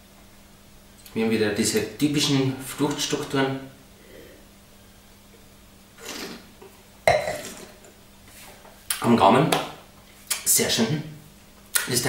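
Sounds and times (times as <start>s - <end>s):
wine slurped with air: 6.0s - 7.9s.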